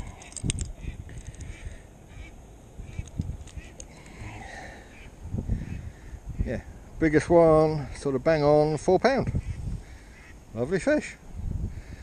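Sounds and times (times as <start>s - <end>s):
handling clicks and rustles: 0.0s - 1.5s, 2.9s - 4.2s
wind buffeting microphone: 0.0s - 12.0s.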